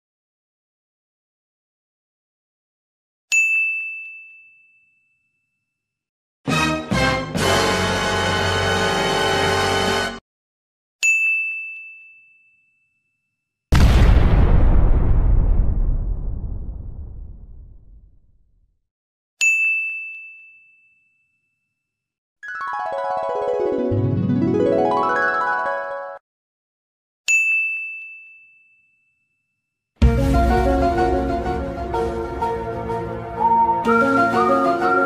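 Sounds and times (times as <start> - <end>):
high bell-like ding: 3.3 - 5.7, 11.0 - 13.3, 19.4 - 21.7, 27.3 - 29.6.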